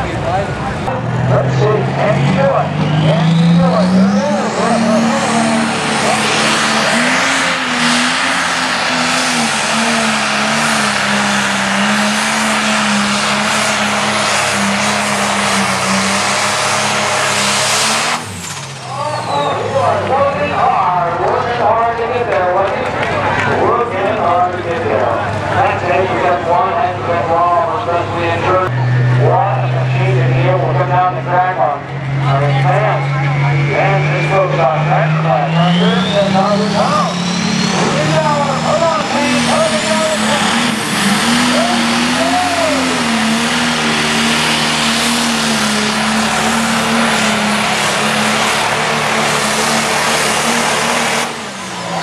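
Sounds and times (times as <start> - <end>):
announcer talking over loudspeakers: 0.0 - 7.4, 18.9 - 44.3
diesel engine revving under load: 0.0 - 52.0
turbocharger whine: 0.0 - 52.0.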